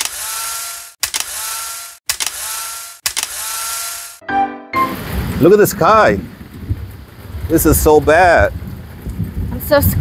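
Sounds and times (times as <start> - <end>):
camera shutter clicks: 0.0 - 4.2.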